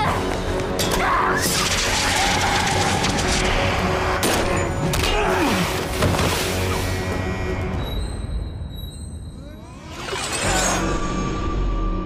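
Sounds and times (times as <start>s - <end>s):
dramatic music score: 0.0s - 12.0s.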